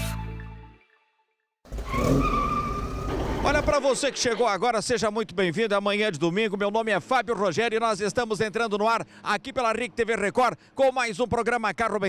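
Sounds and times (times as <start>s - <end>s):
vehicle tyre screech: 1.7s - 4.4s
man speaking: 3.4s - 12.0s.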